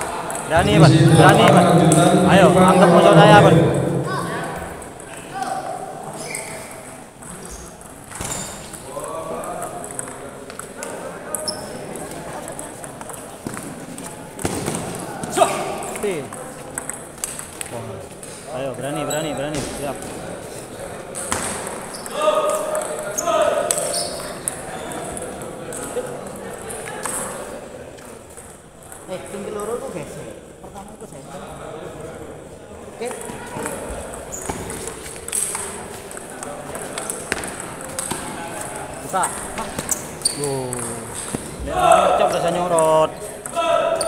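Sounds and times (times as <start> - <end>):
voices in large hall: 0.0 - 44.0.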